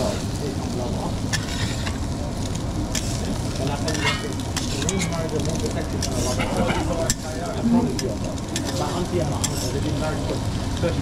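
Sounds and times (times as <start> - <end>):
eggs sizzling on a griddle: 0.0 - 11.0
steel spatula clicking on griddle: 1.3 - 2.0, 2.9 - 3.2, 3.9 - 7.3, 8.0 - 9.8.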